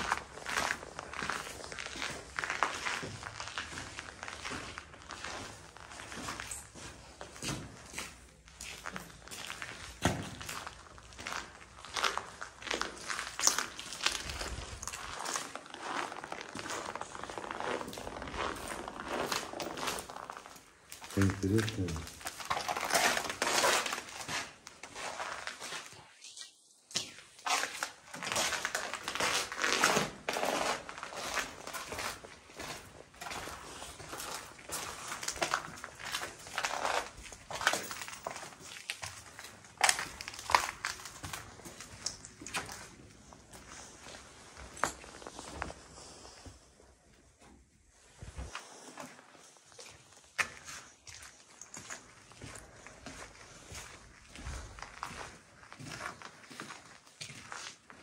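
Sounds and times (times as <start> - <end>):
footsteps crunching over rubble: 0.0 - 58.0.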